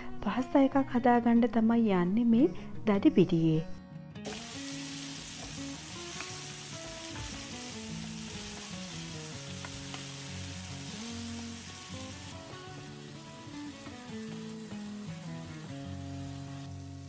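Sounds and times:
soft background music: 0.0 - 17.0
vegetables sizzling in oil: 4.2 - 17.0.

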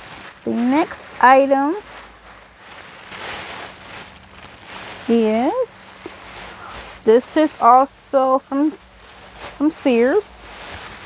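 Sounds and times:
clothing rustling: 0.0 - 11.0.

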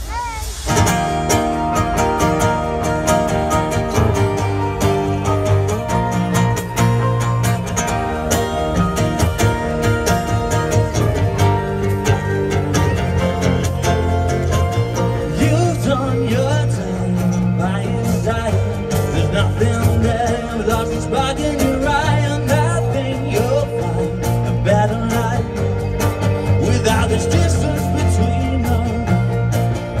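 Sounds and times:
electric guitar: 0.0 - 30.0
keyboard: 0.0 - 30.0
acoustic guitar: 0.3 - 30.0
sustained bass notes: 0.7 - 30.0.

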